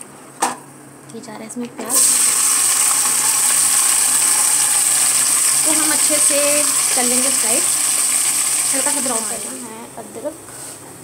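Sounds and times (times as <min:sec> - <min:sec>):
onions sizzling in hot oil: 0:01.9 - 0:09.7.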